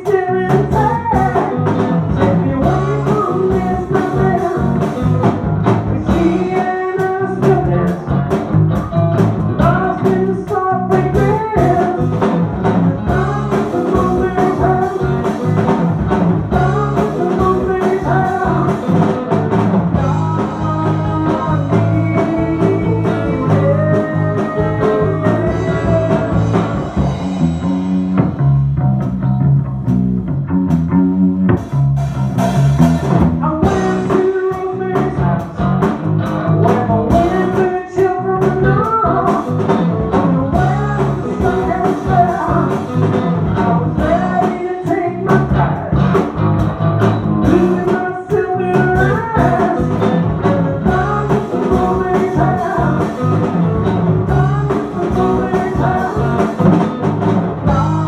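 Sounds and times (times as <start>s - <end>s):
male lead vocal: 0.0s - 8.4s, 9.5s - 27.2s, 33.4s - 46.3s, 47.4s - 58.0s
rock band playing: 0.0s - 58.0s.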